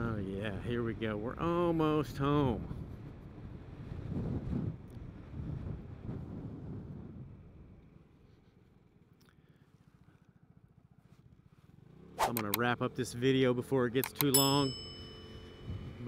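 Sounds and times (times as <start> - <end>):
wind and road rush: 0.0 - 9.2, 9.9 - 16.0
scooter engine running: 14.0 - 16.0.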